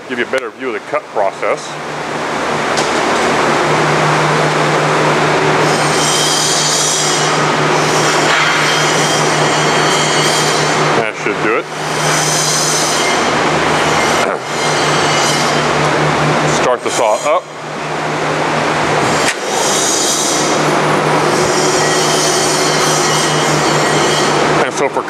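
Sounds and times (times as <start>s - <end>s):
band saw motor hum: 1.6s - 25.0s.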